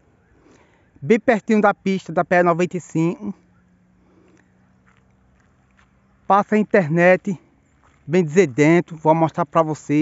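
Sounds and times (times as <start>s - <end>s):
faint ticks: 4.1s - 6.1s.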